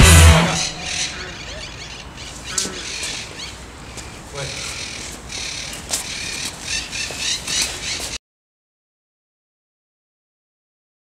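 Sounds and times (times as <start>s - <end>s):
birds squawking: 0.0s - 8.2s.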